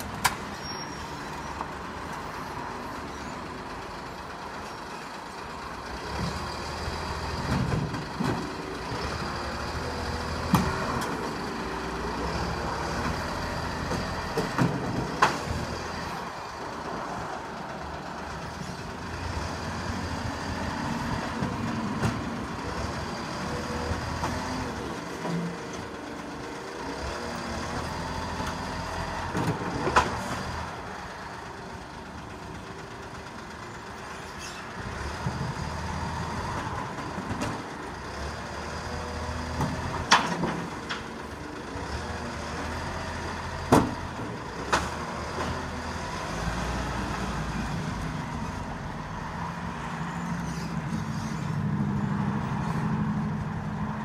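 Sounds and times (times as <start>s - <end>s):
garbage truck diesel engine: 0.0s - 54.0s.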